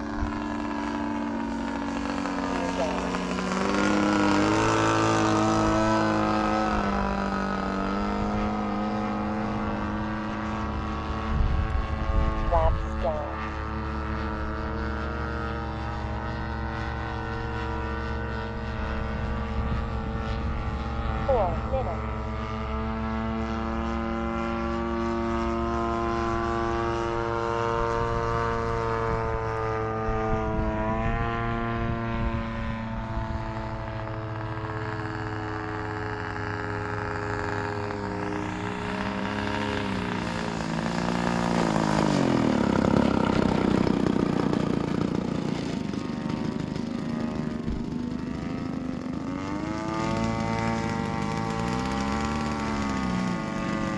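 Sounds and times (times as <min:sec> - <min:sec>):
model plane engine and propeller: 0:00.0 - 0:53.9.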